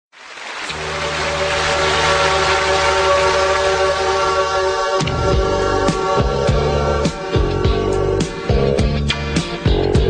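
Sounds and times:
low drone: 0.6 - 8.7.

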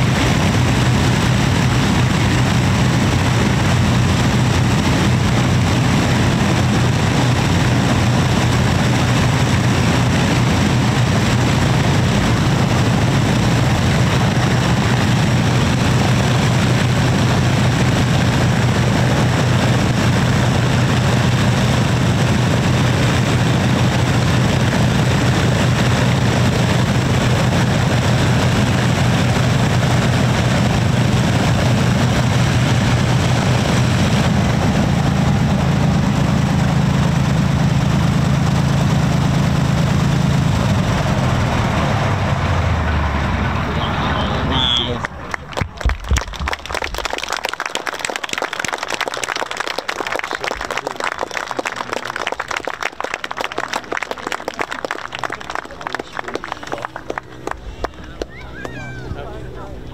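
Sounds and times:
piston aero engines running: 0.0 - 59.9
voices: 42.3 - 45.8, 50.2 - 59.9
people clapping: 44.7 - 59.0.

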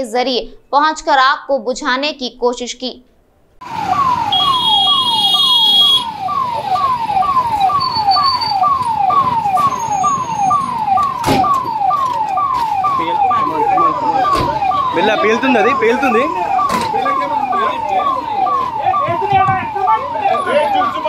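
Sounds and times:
fire engine siren wailing: 3.6 - 21.0.

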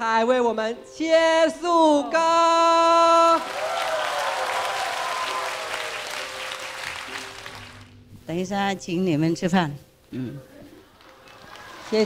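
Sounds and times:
faint music: 0.0 - 12.0
crowd applauding: 3.1 - 8.0, 11.0 - 12.0.

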